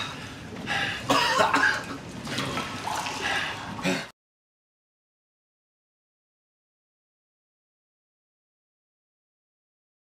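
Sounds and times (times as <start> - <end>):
person coughing: 1.1 - 1.9, 3.8 - 4.1.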